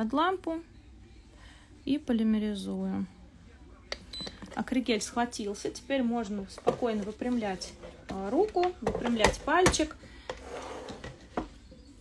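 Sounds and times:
faint rubbing and rustling: 10.2s - 11.7s.

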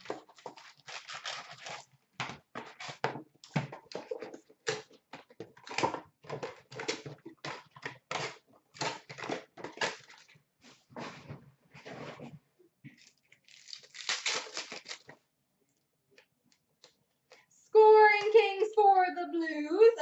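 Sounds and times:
foil wrappers tearing and crinkling: 0.0s - 2.0s, 8.1s - 10.3s, 13.0s - 15.2s.

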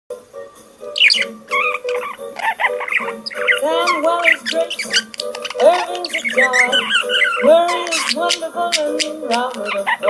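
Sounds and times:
music with sustained notes: 0.1s - 10.0s
budgerigar chirping: 0.8s - 10.0s.

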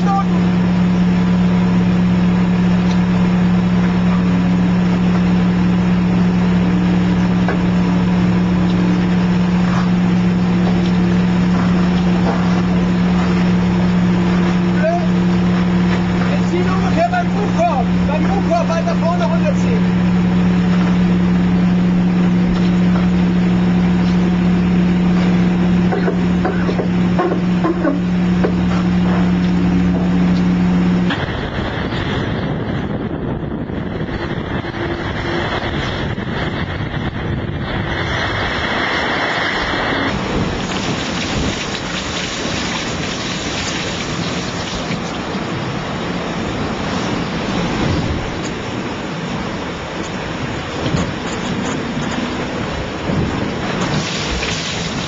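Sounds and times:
steady low drone: 0.0s - 55.0s
water noise: 0.0s - 55.0s
wind: 0.0s - 55.0s.

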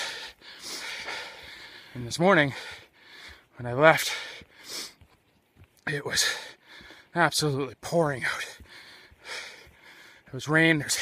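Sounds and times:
man breathing: 0.0s - 5.1s, 6.1s - 7.2s, 8.2s - 10.4s.

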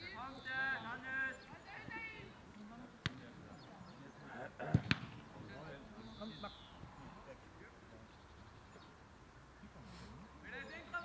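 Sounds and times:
football being kicked: 4.7s - 5.2s.

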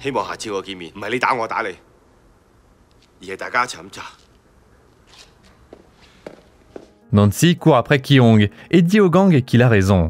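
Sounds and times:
faint footsteps walking: 2.8s - 7.1s.

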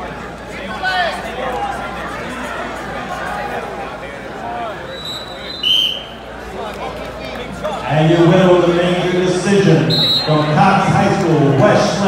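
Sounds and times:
crowd chatter echoing: 0.0s - 12.0s
referee's whistle blast: 4.9s - 6.2s, 9.8s - 10.5s.

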